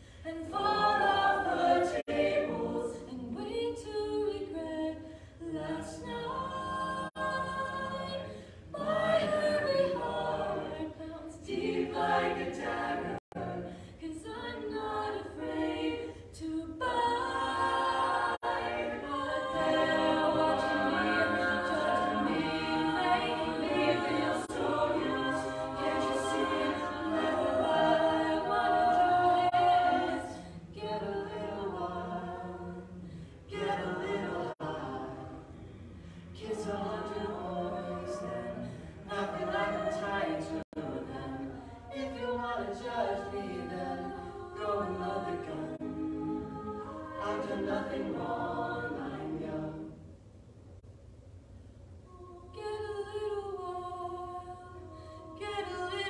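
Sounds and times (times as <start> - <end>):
a cappella group singing: 0.0 - 50.2, 52.1 - 56.0.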